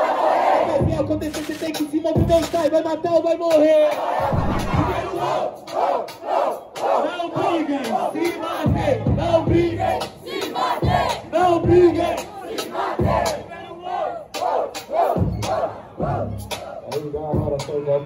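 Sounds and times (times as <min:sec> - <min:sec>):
crowd shouting and chanting: 0:00.0 - 0:18.0.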